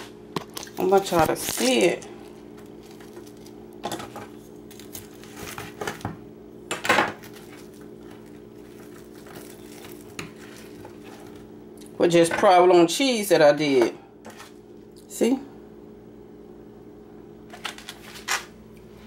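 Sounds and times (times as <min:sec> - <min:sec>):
steady low hum: 0:00.0 - 0:19.0.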